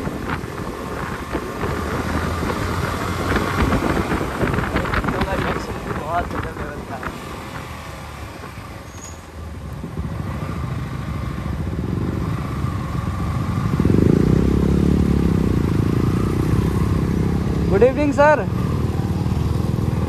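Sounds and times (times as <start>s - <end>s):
motorcycle engines at low speed: 0.0s - 20.0s.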